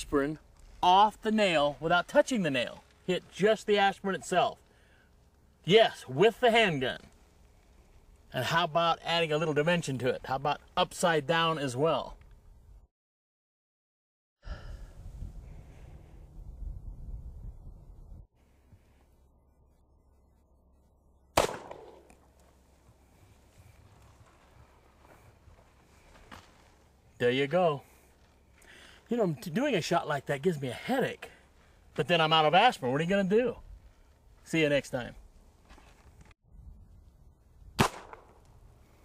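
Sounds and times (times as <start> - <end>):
revolver gunshot with echo: 21.4 - 22.2, 37.8 - 38.4.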